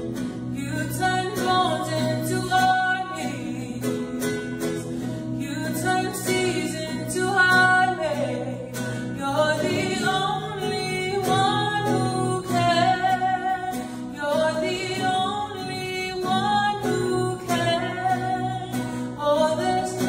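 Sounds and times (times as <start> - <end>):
strummed acoustic guitar: 0.0 - 20.0
woman singing: 0.4 - 20.0.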